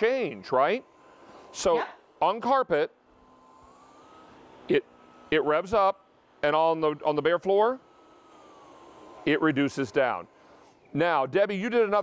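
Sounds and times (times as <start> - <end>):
stick vacuum motor whine: 0.0 - 12.0.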